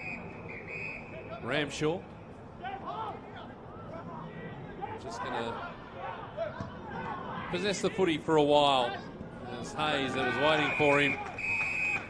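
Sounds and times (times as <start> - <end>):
open-air stadium hiss: 0.0 - 12.0.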